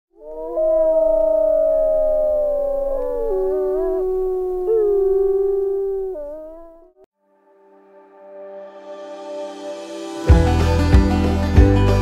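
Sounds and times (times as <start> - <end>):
wolves howling: 0.2 - 6.9.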